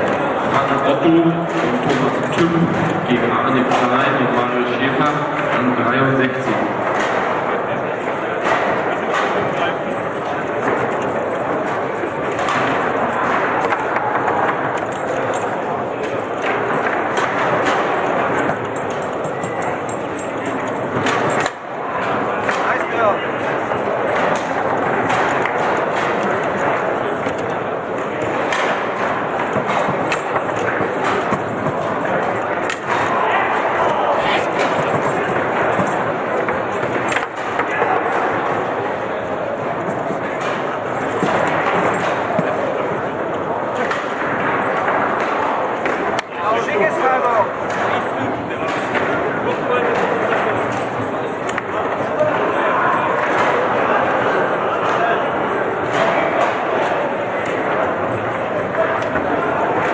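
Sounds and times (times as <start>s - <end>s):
foosball ball and rods clacking: 0.0s - 59.9s
many voices in large hall: 0.0s - 59.9s.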